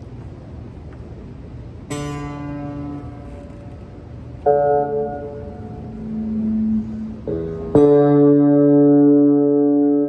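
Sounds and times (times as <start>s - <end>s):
low background rumble: 0.0s - 9.4s
acoustic guitar chord strummed: 1.9s - 10.0s.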